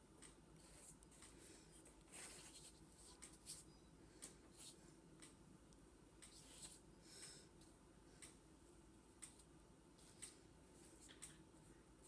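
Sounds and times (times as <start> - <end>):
paintbrush scratching on paper: 2.1 - 3.7.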